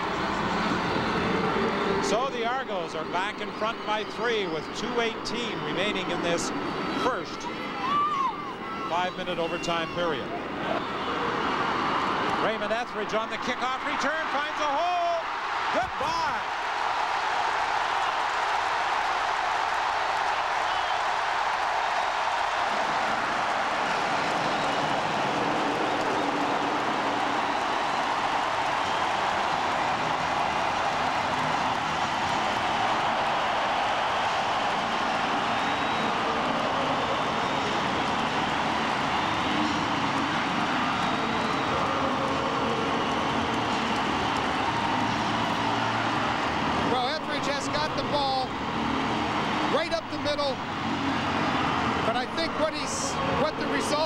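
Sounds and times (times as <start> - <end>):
stadium crowd cheering: 0.0 - 54.0.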